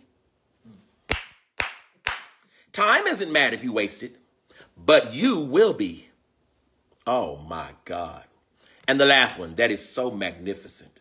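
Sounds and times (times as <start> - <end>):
sharp hand claps: 1.0 - 2.4.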